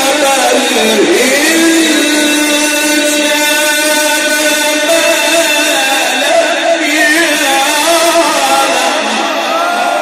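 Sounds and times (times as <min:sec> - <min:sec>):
man chanting melodically: 0:00.0 - 0:09.6.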